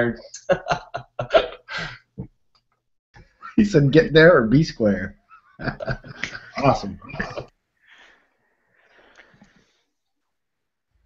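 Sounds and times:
man laughing: 0.2 - 2.1, 5.2 - 7.5.

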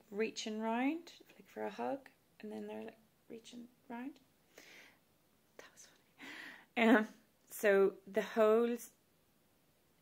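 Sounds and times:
woman whispering softly: 5.6 - 6.1.

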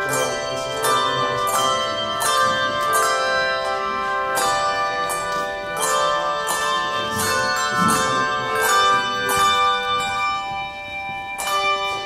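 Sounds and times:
handbell choir ringing chords: 0.0 - 12.0.

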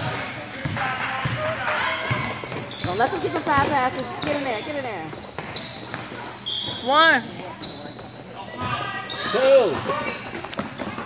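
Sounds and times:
basketball bouncing on court: 0.0 - 7.6, 9.6 - 11.0.

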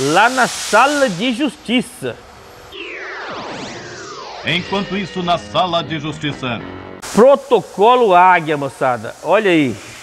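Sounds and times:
electronic tones sweeping in pitch: 2.7 - 6.8.

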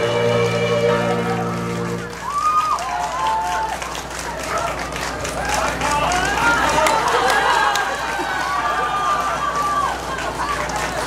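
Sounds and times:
audience applause: 0.0 - 11.0
audience calling out and talking: 0.0 - 11.0.

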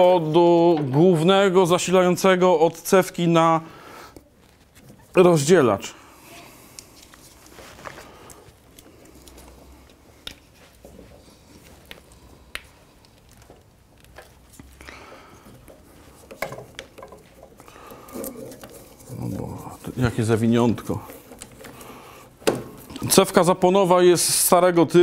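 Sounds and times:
light handling clicks and rustles: 6.7 - 23.2.

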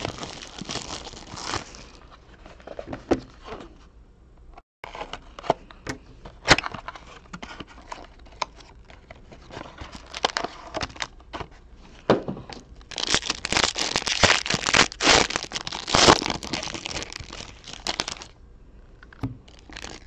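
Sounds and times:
foil wrapper crinkling: 0.0 - 2.0, 9.8 - 11.2, 12.9 - 18.3, 19.5 - 20.0.

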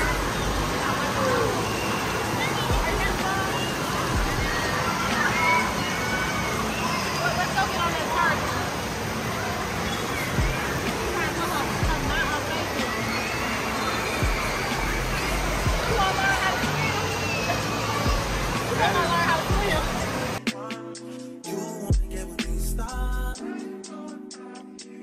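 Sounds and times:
children's voices and shouts: 0.0 - 20.4
rushing and sloshing water: 0.0 - 20.4
music: 0.0 - 25.0.

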